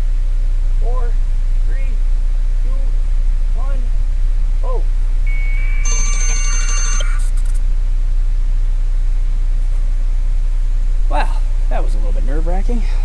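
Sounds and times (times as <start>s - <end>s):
steady low hum: 0.0s - 13.0s
modem-like data tones: 5.3s - 7.5s.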